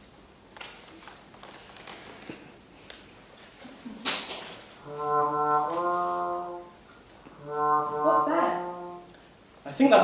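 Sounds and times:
laughter: 0:03.6 - 0:04.2
brass instrument low held notes: 0:04.8 - 0:09.2.

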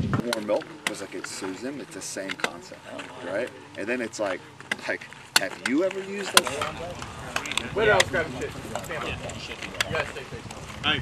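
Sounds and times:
background voices: 0:00.0 - 0:11.0.

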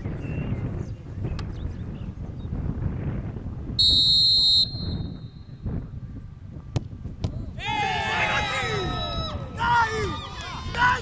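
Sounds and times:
wind rumble on microphone: 0:00.0 - 0:11.0
referee's whistle blast: 0:03.8 - 0:05.4.

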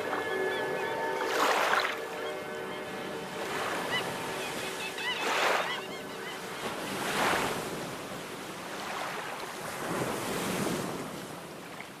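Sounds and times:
wind: 0:00.0 - 0:12.0
waves washing against rocks: 0:06.7 - 0:11.6.

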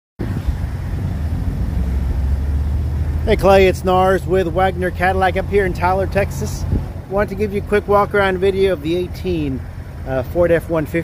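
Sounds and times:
wind on microphone: 0:00.2 - 0:03.3, 0:05.5 - 0:07.3
vehicle engine idling: 0:00.2 - 0:11.0.

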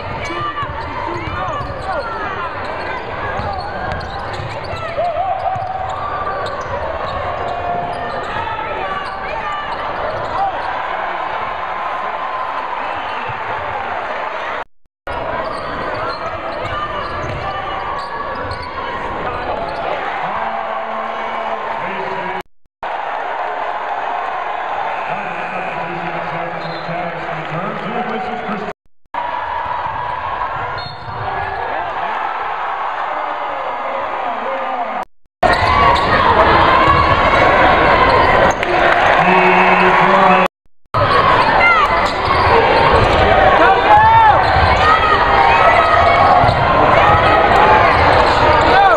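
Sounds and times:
crowd of voices: 0:00.0 - 0:48.9.

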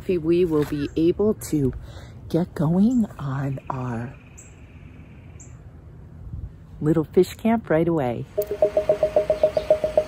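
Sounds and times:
faint outdoor background noise: 0:00.0 - 0:10.0
small bird chirping: 0:08.4 - 0:10.0.

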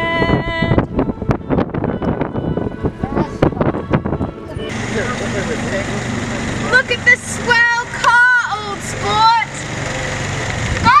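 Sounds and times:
car engine rumbling: 0:00.0 - 0:11.0.

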